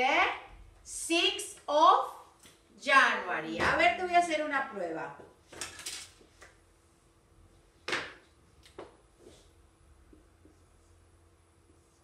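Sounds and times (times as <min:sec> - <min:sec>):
objects clattering on a desk: 0:05.5 - 0:06.5, 0:07.8 - 0:09.0.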